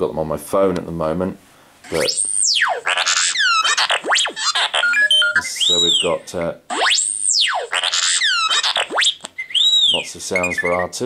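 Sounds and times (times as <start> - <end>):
robot electronic whistles and chirps: 1.9 - 11.0.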